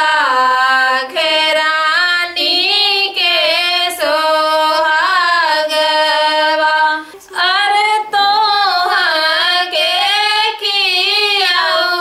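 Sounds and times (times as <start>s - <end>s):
women singing folk song: 0.0s - 12.0s.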